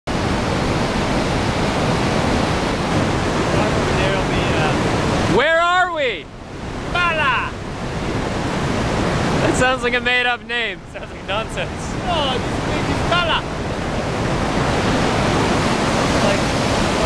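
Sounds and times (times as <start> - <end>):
whitewater rushing: 0.1 - 17.0
person calling out: 6.9 - 7.6.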